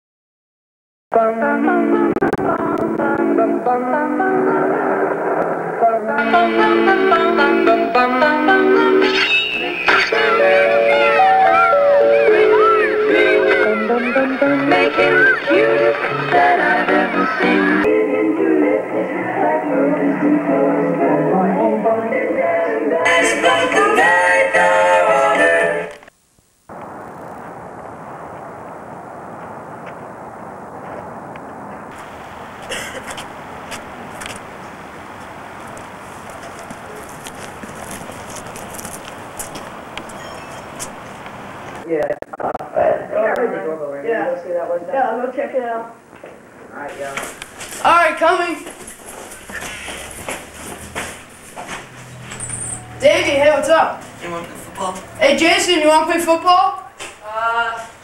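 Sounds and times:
outdoor background noise: 0:01.2 - 0:58.0.

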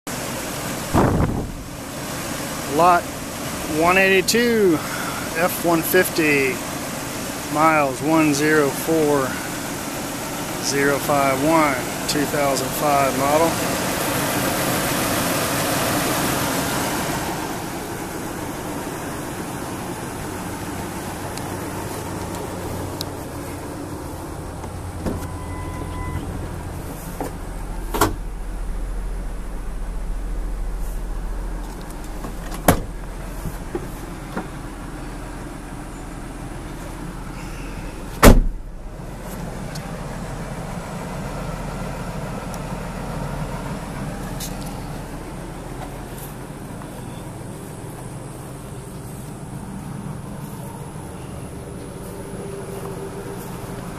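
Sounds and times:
pickup truck idling: 0:00.1 - 0:53.9.

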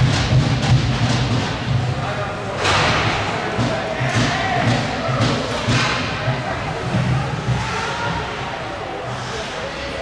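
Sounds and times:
steady background noise: 0:00.0 - 0:10.0
indistinct voices: 0:01.3 - 0:10.0.

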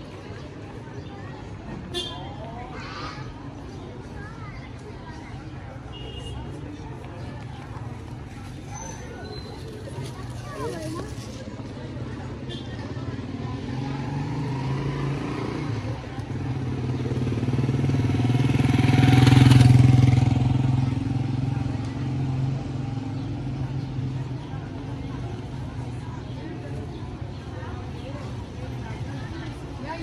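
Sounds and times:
small motorcycle engine passing: 0:13.1 - 0:24.1.

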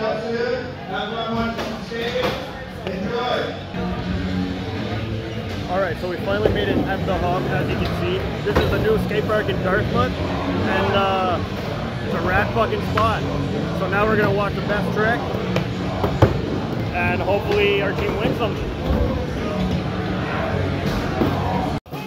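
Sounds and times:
crowd talking and shouting: 0:00.0 - 0:22.0.

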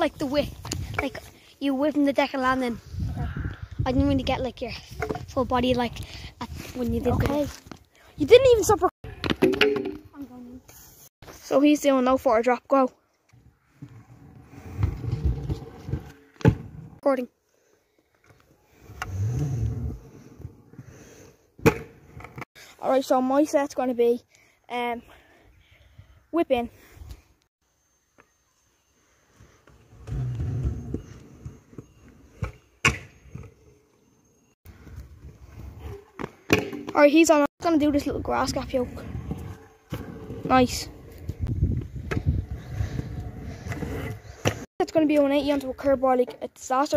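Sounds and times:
scooter wheels rolling on concrete: 0:00.0 - 0:02.9, 0:13.3 - 0:17.0, 0:29.2 - 0:46.9
scooter landing clack: 0:21.6 - 0:22.4.

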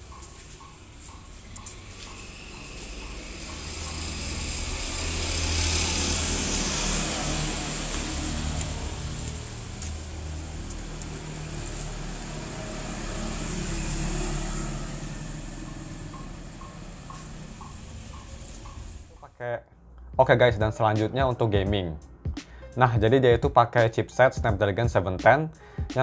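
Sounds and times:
traffic passing on street: 0:00.0 - 0:19.2.

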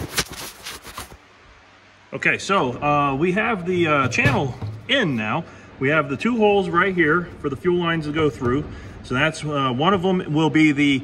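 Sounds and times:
low background hush: 0:01.3 - 0:11.0.

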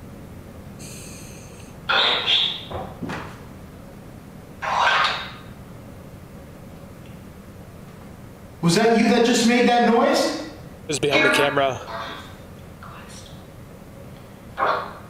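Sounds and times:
loud noises in a room: 0:00.0 - 0:15.0.

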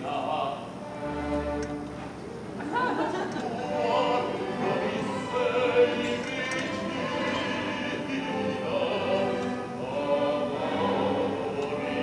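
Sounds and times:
operatic singing: 0:03.2 - 0:12.0.

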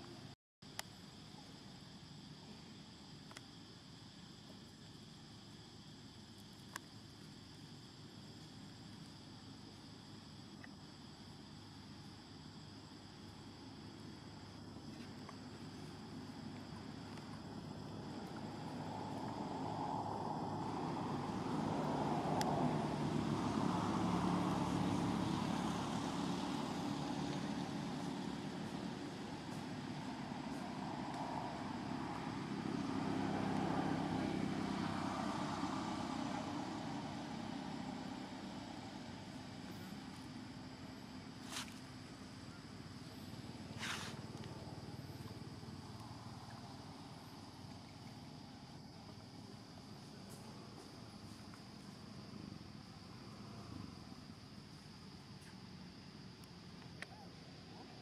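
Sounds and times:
vehicle engine passing by: 0:15.4 - 0:54.4.

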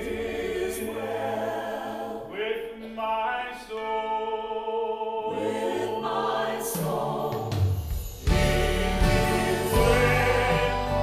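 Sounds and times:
instrumental accompaniment: 0:06.9 - 0:11.0.

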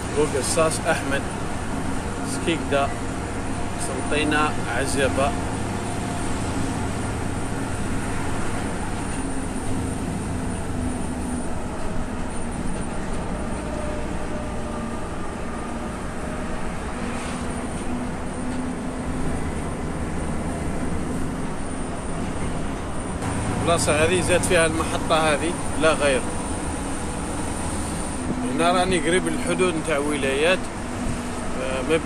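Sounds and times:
truck diesel engine drone: 0:00.0 - 0:32.0.

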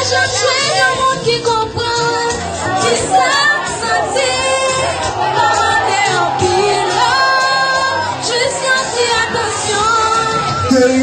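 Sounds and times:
girl singing through loudspeaker: 0:00.0 - 0:11.0.

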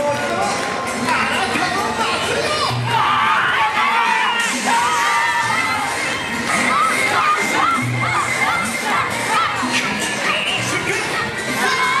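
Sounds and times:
dance music: 0:00.0 - 0:12.0
group shouting calls together: 0:02.5 - 0:06.0.

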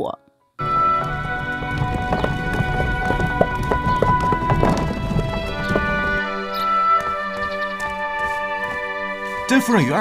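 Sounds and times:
background music: 0:00.0 - 0:10.0
horse hooves on stone: 0:00.6 - 0:10.0.

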